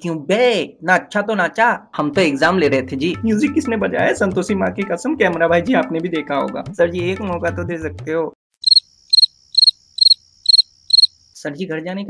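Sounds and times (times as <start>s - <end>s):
cricket chirping: 8.6s - 11.5s.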